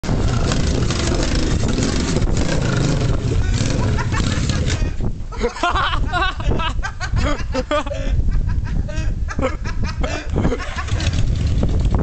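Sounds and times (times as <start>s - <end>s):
trike engine running: 0.0s - 5.0s, 10.6s - 12.0s.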